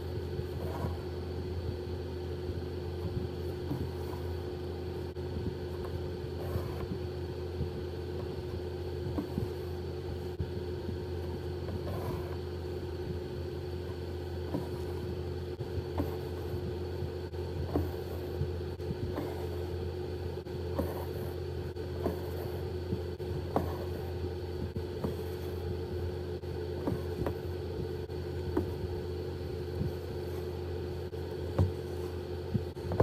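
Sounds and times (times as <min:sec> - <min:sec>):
steady low hum: 0:00.0 - 0:33.0
needle and thread scratching fabric: 0:20.6 - 0:25.8.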